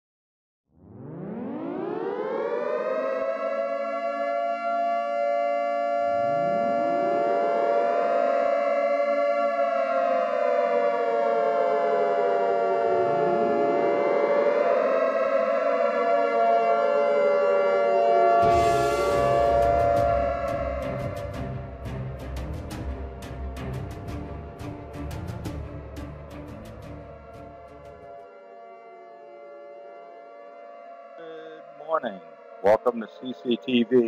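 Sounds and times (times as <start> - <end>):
air-raid siren wailing: 0.8 - 24.9, 25.6 - 34.0.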